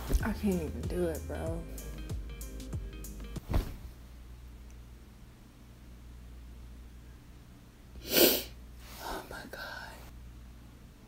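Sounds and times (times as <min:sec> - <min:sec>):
woman's sharp burst of breath: 0:08.0 - 0:08.6
woman half-whispering: 0:09.0 - 0:10.1.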